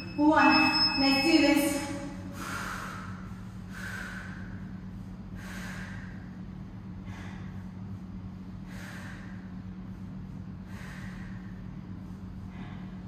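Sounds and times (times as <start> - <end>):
woman breathing hard: 2.1 - 13.0.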